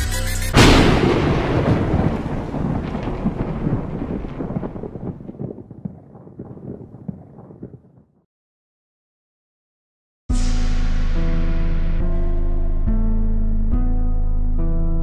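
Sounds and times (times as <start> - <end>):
hip hop beat: 0.0 - 0.7
loud thunder-like boom: 0.6 - 8.2.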